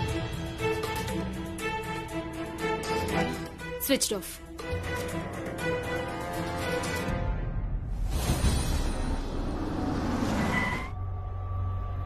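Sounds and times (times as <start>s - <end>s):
low music drone: 9.1s - 12.0s
car braking to a stop: 9.2s - 11.0s
brake squeal: 9.8s - 11.1s.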